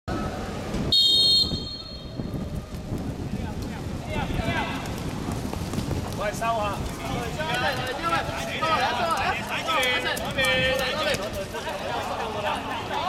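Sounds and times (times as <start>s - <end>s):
referee whistle blast: 0.9s - 2.2s
players' voices: 2.7s - 5.4s, 6.0s - 13.0s.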